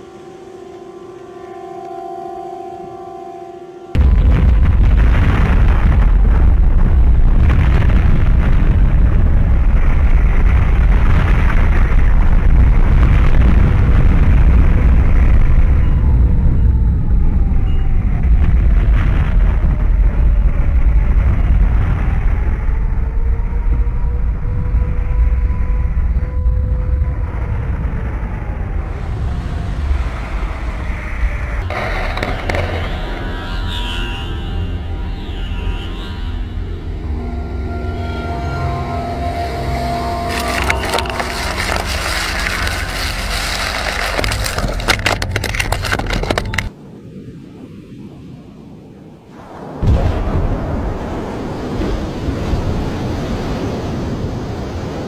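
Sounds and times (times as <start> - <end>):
landslide rumbling: 4.0 - 16.6, 26.9 - 33.2, 39.0 - 46.7, 49.4 - 55.0.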